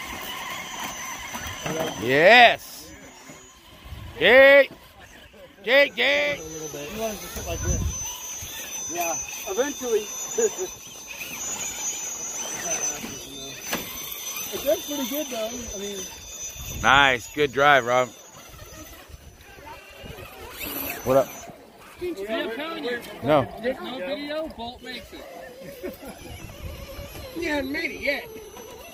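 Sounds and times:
people talking and laughing: 0:00.0 - 0:28.9.

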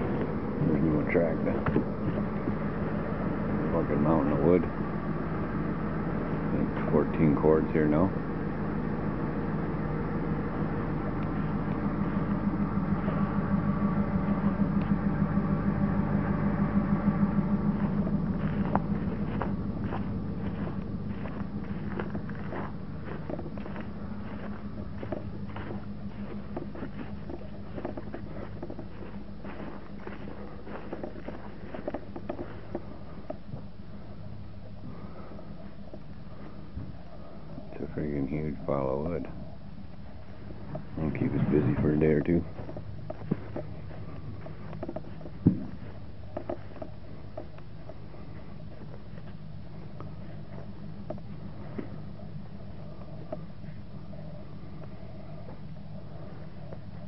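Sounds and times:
footsteps crunching on frozen ground: 0:00.0 - 0:57.0
vehicle engine idling: 0:00.0 - 0:57.0.

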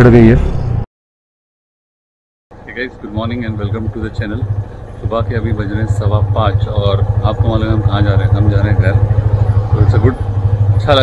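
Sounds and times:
motorcycle engine idling: 0:02.6 - 0:11.0.

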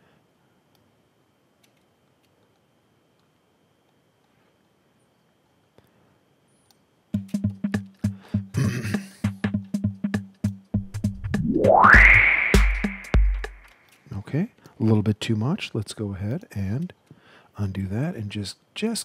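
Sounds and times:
faint clicks: 0:01.6 - 0:03.3
drum machine beat: 0:07.2 - 0:13.7.

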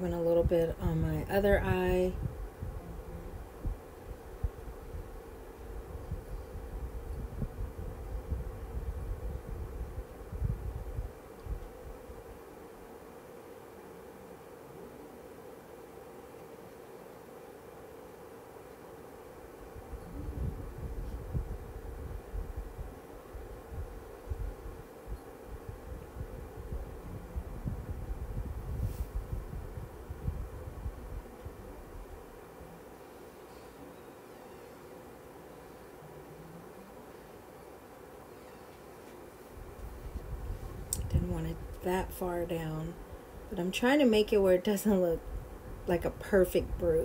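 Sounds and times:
faint electrical hum: 0:00.0 - 0:47.0.

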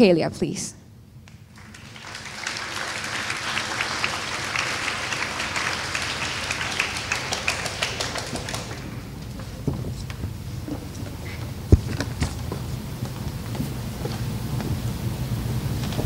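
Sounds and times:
audience applauding: 0:01.3 - 0:09.6.

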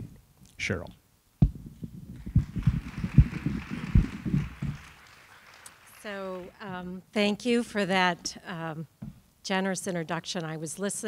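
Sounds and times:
microphone handling thumps: 0:01.4 - 0:04.8, 0:09.0 - 0:09.3.

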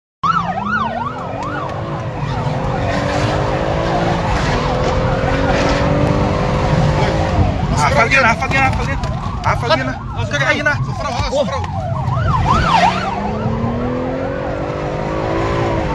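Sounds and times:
police siren yelping: 0:00.2 - 0:15.9
road rumble: 0:00.2 - 0:15.9
car engine accelerating: 0:00.4 - 0:09.5, 0:11.8 - 0:15.9.

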